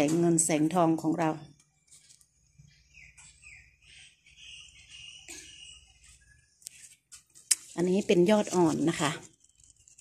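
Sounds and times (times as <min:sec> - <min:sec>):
small birds chirping: 0:00.8 - 0:10.0.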